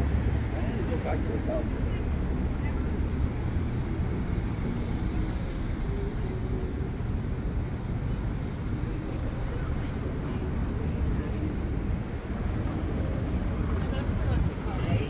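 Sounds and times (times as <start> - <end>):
low rumble of traffic: 0.0 - 15.0.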